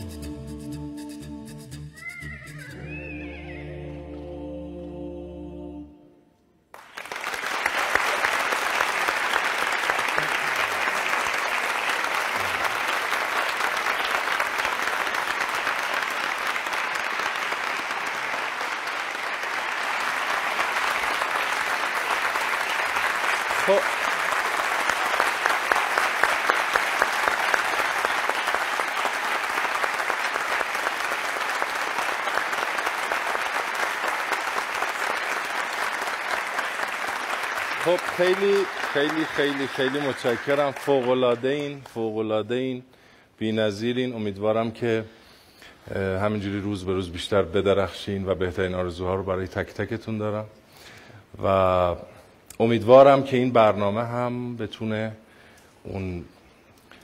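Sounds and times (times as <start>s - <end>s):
audience applauding: 6.7s - 42.0s.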